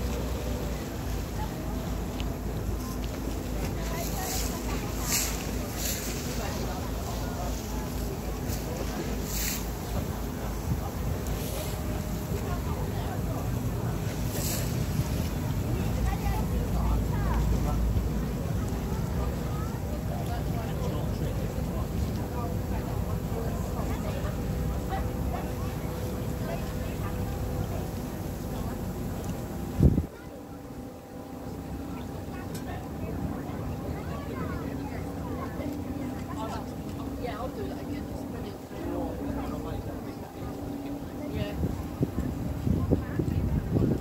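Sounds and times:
ferry engine rumble: 0.0s - 44.0s
water washing past hull: 0.0s - 44.0s
wind buffeting microphone: 29.4s - 30.1s, 39.2s - 44.0s.

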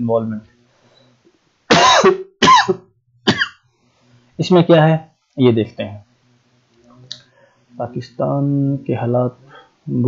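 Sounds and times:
man coughing: 1.7s - 3.6s.

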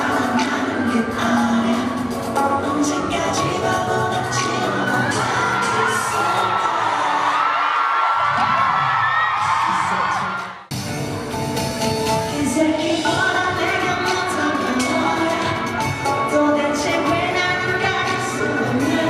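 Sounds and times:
crowd screaming and cheering: 0.0s - 12.4s, 13.0s - 19.0s
live pop music: 0.0s - 19.0s.

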